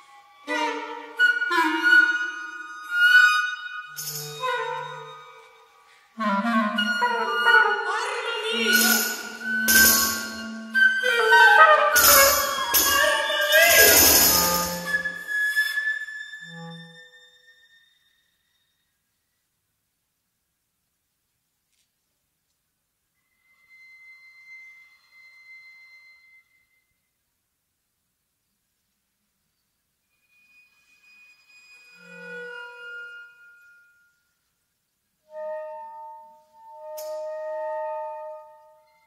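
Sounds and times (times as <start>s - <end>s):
chamber ensemble playing: 6.2s - 15.3s
high held tone ringing: 8.5s - 15.3s.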